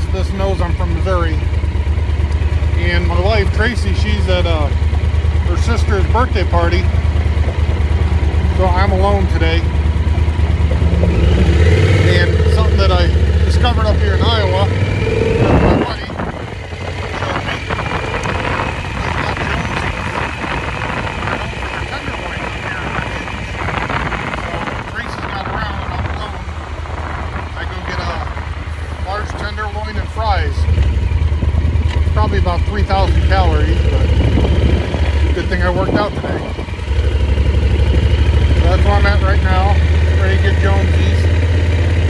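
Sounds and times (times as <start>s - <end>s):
motorcycle engine accelerating: 0.0s - 42.0s
wind noise on microphone: 5.4s - 40.7s.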